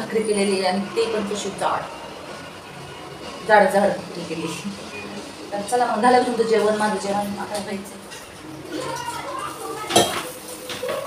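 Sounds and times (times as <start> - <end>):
metal utensils clinking on pots: 9.8 - 11.0.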